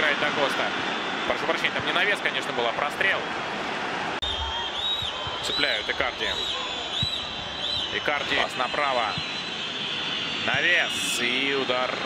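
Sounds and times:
stadium crowd noise: 0.0s - 12.0s
high gliding whistles: 4.2s - 11.8s.

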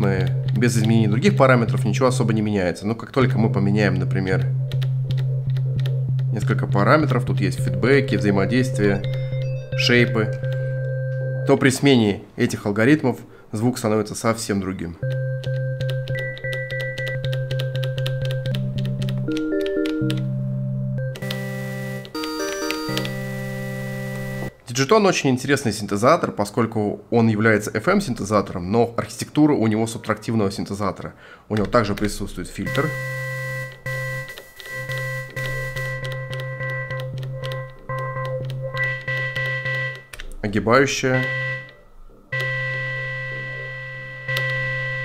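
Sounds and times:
steady clicking pulse: 0.0s - 11.3s, 15.0s - 20.4s, 21.0s - 24.6s, 31.6s - 40.5s, 41.2s - 45.0s
synthesizer sustained notes: 0.0s - 12.0s, 15.0s - 24.5s, 32.6s - 45.0s.

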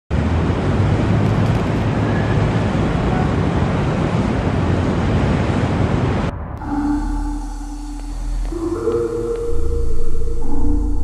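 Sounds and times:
city traffic rumble: 0.1s - 11.0s
wind roar: 0.1s - 11.0s
deep low hum: 6.3s - 11.0s.

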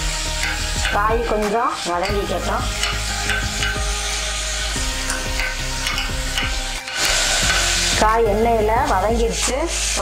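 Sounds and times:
vegetables sizzling in a pot: 0.0s - 10.0s
ladle knocking and scraping pot: 0.3s - 8.1s.

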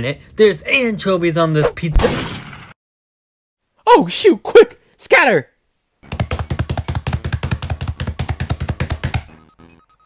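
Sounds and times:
fast drumming on drum kit: 6.0s - 9.3s.

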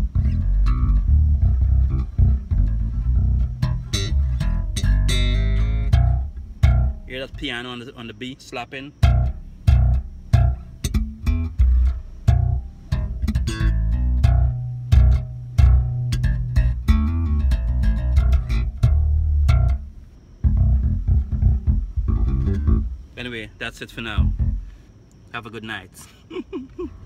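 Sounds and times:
slap bass through car speakers: 0.0s - 7.7s, 9.0s - 23.1s, 24.1s - 24.8s.

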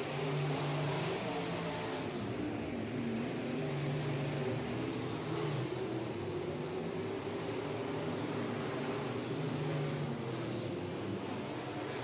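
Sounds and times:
race car engines: 0.0s - 12.0s.

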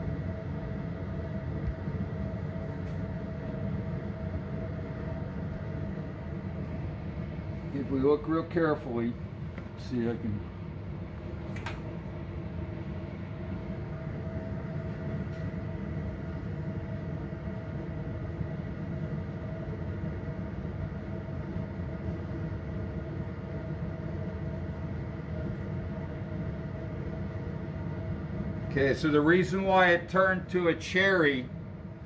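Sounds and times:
exhaust fan rumble: 0.0s - 32.0s.

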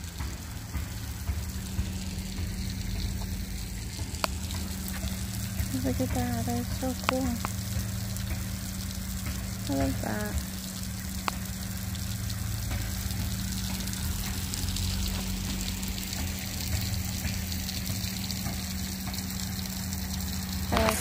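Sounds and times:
low hum: 0.0s - 21.0s
water streams splashing on stones: 0.0s - 21.0s.

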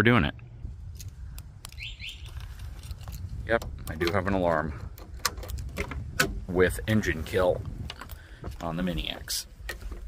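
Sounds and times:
bird chirping: 1.7s - 2.6s.

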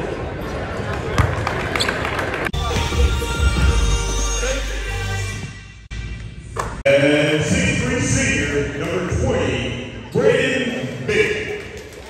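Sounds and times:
music: 2.6s - 6.4s
voices in a gym: 6.8s - 12.0s.

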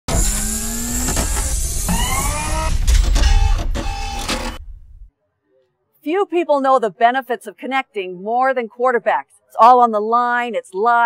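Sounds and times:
heavy low rumble: 0.8s - 5.1s.

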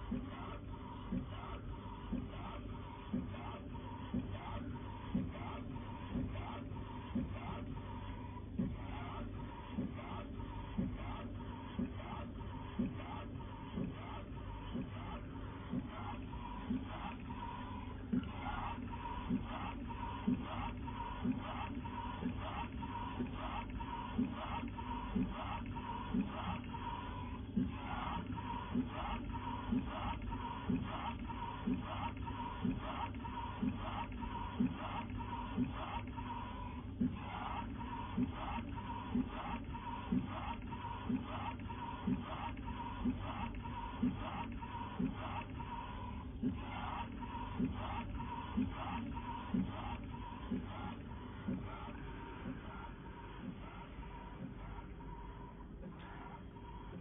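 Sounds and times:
printer machine hum: 0.0s - 57.0s.

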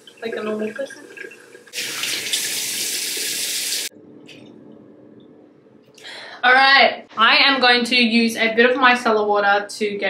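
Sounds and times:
tap water running into sink: 0.0s - 3.9s.

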